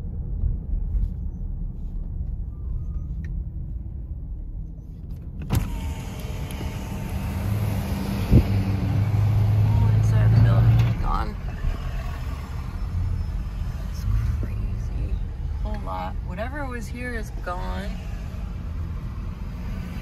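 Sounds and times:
car road and engine noise: 0:00.0 - 0:20.0.

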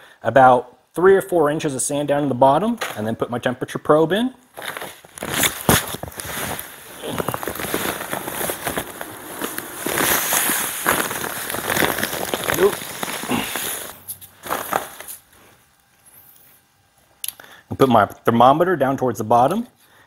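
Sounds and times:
paper bag crinkling: 0:04.6 - 0:15.6.

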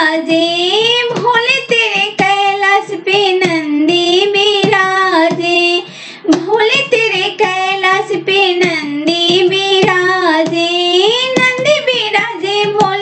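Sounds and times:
sharp percussive beats: 0:00.3 - 0:13.0.

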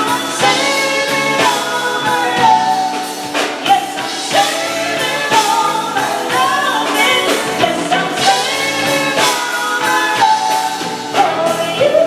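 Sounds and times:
drum kit steady beat: 0:00.0 - 0:12.0
electric guitar: 0:00.0 - 0:12.0
keyboards: 0:00.0 - 0:12.0
woman singing into microphone: 0:00.0 - 0:12.0.

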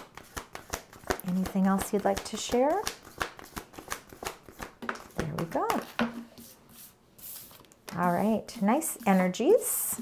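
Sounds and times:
cards being shuffled: 0:00.0 - 0:06.0.

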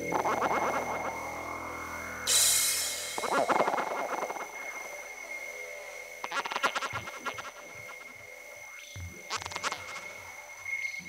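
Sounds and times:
high synth tones: 0:00.0 - 0:04.8
faint low pulses: 0:00.0 - 0:06.3
rattling croaky synth effects: 0:00.0 - 0:10.2.

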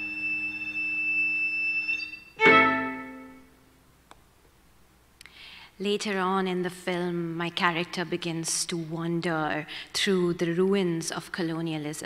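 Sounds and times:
high steady pure tone: 0:02.0 - 0:03.7.

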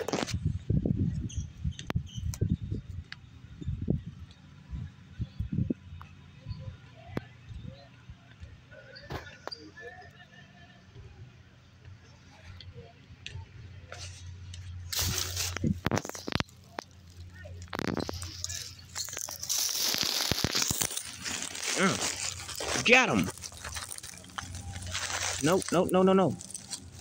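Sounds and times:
hand rummaging in dry leaves: 0:14.9 - 0:27.0.

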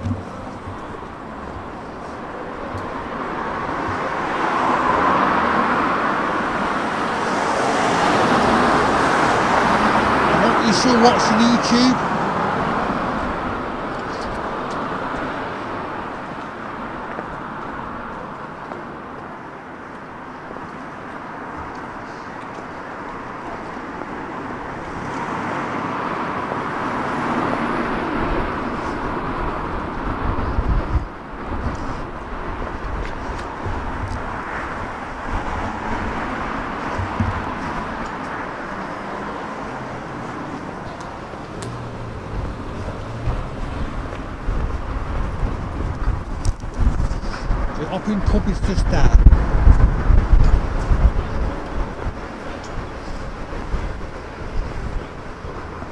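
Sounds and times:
passing cars hum: 0:00.0 - 0:55.9.

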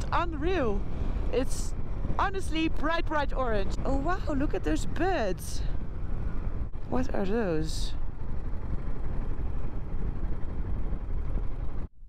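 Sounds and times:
wind on microphone: 0:00.0 - 0:11.9
motorcycle engine rumble: 0:00.0 - 0:12.0.

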